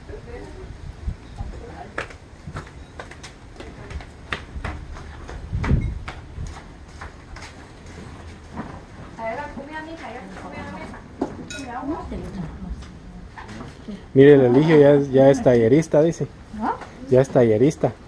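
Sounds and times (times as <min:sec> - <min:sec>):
wind rumble on microphone: 0:00.0 - 0:02.9, 0:03.6 - 0:07.0
plates and utensils clinking: 0:11.5 - 0:11.7.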